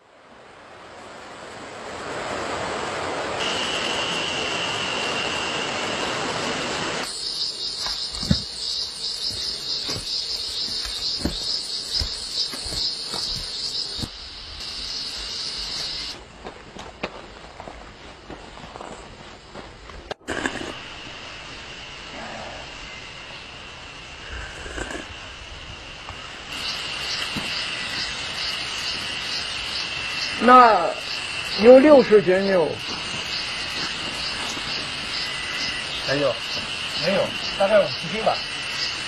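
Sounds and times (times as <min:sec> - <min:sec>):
high-pitched insect chorus: 0:03.4 - 0:16.2, 0:20.4 - 0:39.0.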